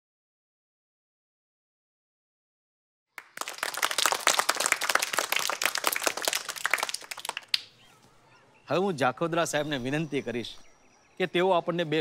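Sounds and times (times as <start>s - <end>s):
children clapping: 3.2s - 7.8s.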